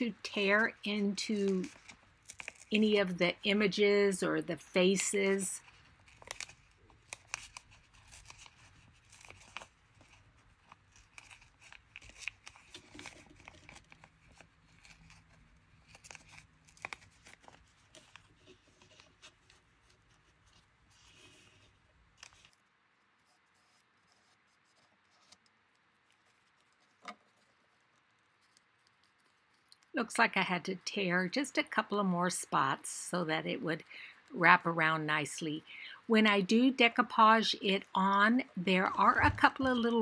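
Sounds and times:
rice paper crinkling rustle: 0:01.3 - 0:03.1, 0:04.9 - 0:22.7.

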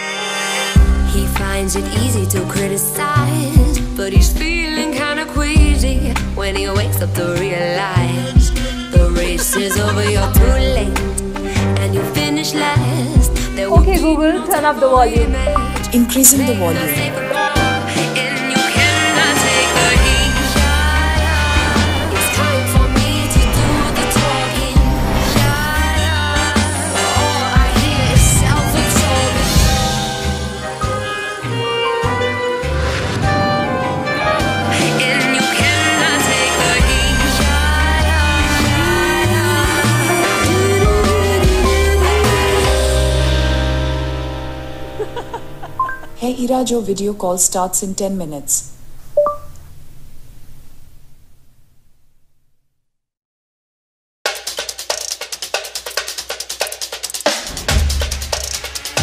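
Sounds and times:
loud pop song: 0:00.8 - 0:32.5, 0:34.4 - 0:44.2.

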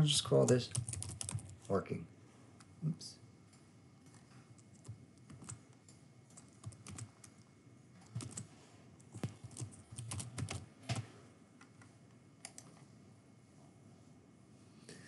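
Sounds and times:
computer keyboard typing: 0:00.4 - 0:01.7, 0:04.0 - 0:12.8.

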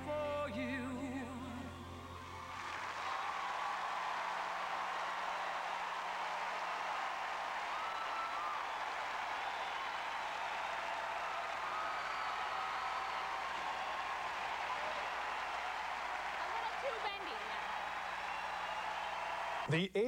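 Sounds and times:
audience clapping: 0:02.1 - 0:19.8
high whoops: 0:02.2 - 0:19.7.

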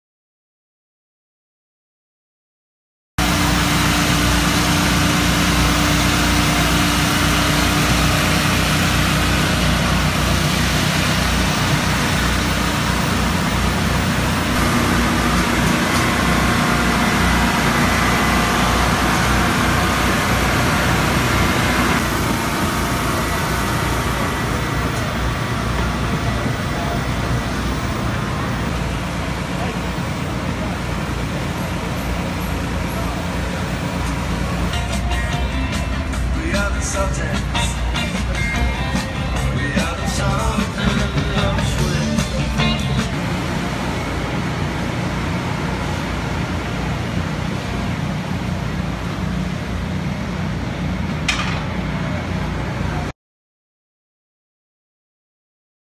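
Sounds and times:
mechanical din of garage: 0:03.2 - 0:53.1
background voices: 0:35.4 - 0:43.3.

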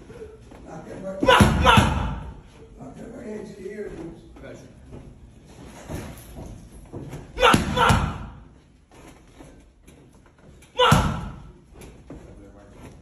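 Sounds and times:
boxing gloves hitting padded mitts: 0:01.0 - 0:02.4, 0:06.9 - 0:08.6, 0:10.8 - 0:12.4.

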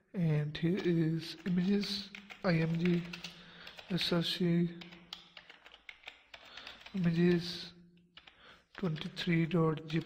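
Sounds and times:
computer keyboard typing: 0:01.3 - 0:07.6, 0:08.2 - 0:09.2.

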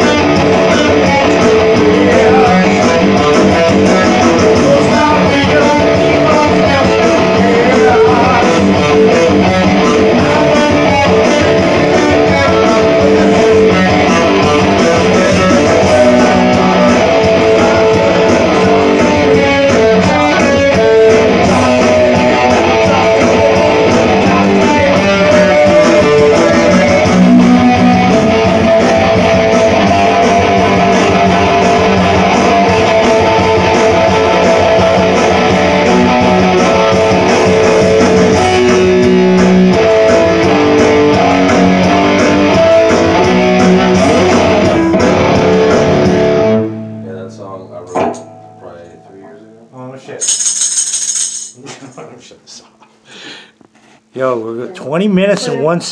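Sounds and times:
man singing: 0:00.0 - 0:45.8
loud electric guitar: 0:00.0 - 0:47.0.

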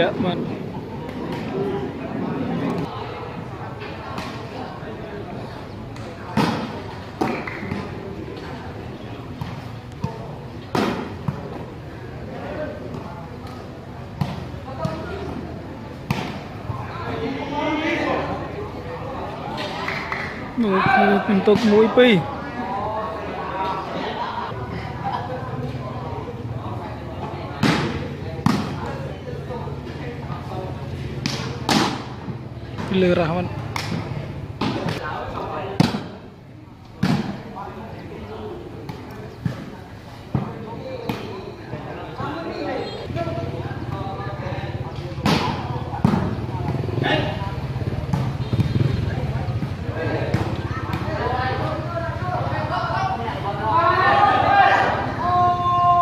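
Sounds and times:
spectators' voices: 0:00.0 - 0:56.0
volleyball struck by hands: 0:27.6 - 0:28.9, 0:31.2 - 0:32.9, 0:33.7 - 0:35.0, 0:35.7 - 0:36.2, 0:37.0 - 0:37.4, 0:45.1 - 0:46.9, 0:49.6 - 0:51.2
hands slapping volleyball: 0:33.7 - 0:35.0.

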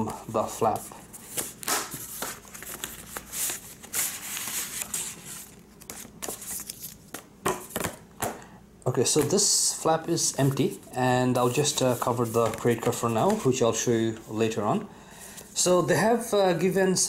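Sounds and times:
paper and card rustling: 0:00.1 - 0:08.0, 0:10.1 - 0:14.3.

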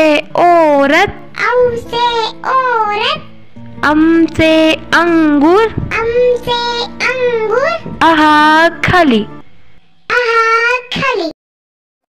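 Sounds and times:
faint backing music: 0:00.0 - 0:11.3.

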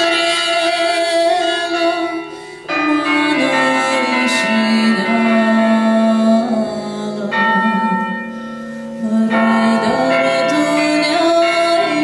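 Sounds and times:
woman singing folk song: 0:00.0 - 0:08.2, 0:09.0 - 0:12.0
electronic carillon bell tones: 0:00.0 - 0:12.0.

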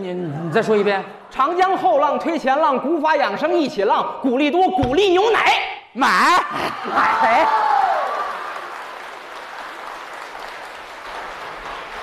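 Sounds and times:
audience applauding: 0:06.9 - 0:12.0.

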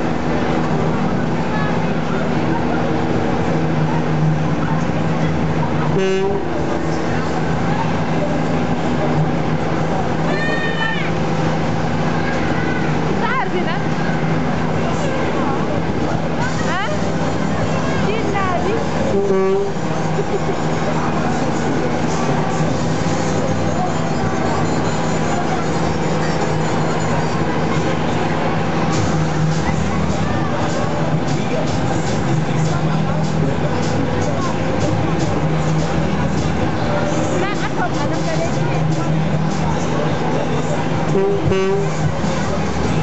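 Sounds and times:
ride machinery drone: 0:00.0 - 0:43.0.

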